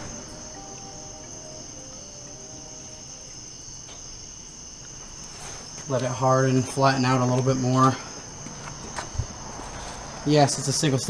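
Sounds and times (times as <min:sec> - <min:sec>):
high-pitched whine: 0:00.0 - 0:08.0
low background hum: 0:00.0 - 0:11.0.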